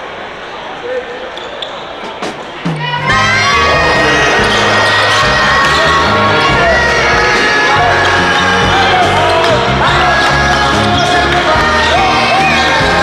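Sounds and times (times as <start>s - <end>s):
crowd chatter: 0.0s - 13.0s
loud music with singing: 2.2s - 13.0s.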